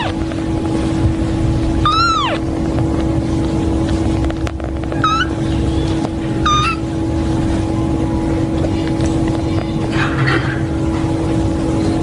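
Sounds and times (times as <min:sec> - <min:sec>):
kitten mewing: 0:00.0 - 0:00.2, 0:01.8 - 0:02.5, 0:04.9 - 0:05.4, 0:06.4 - 0:06.9
steady low hum: 0:00.0 - 0:12.0.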